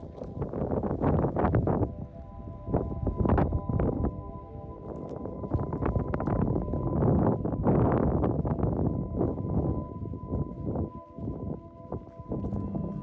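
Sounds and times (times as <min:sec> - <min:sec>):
faint music tones: 0:00.0 - 0:13.0
wind buffeting microphone: 0:00.0 - 0:13.0.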